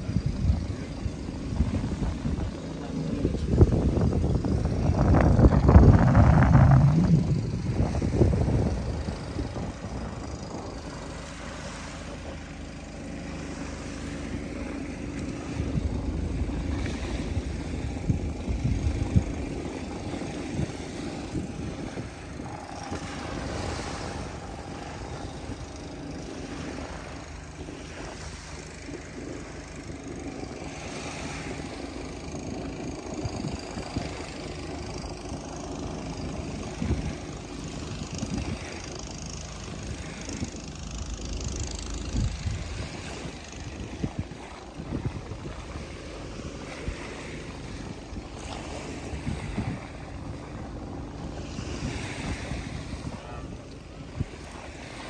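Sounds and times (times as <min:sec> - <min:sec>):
faint engine drone: 0:00.0 - 0:55.0
low outdoor rumble: 0:00.0 - 0:55.0
wind buffeting microphone: 0:00.0 - 0:55.0.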